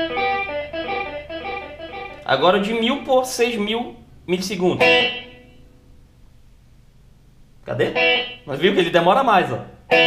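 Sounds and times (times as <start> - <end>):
electric guitar note: 0.0 - 3.1, 4.8 - 5.6, 7.8 - 8.5
faint steady hum: 0.0 - 10.0.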